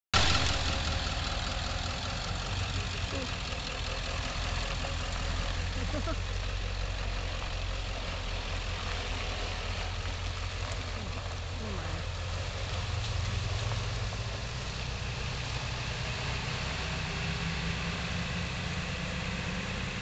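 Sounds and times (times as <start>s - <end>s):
pickup truck engine rumble: 0.1s - 20.0s.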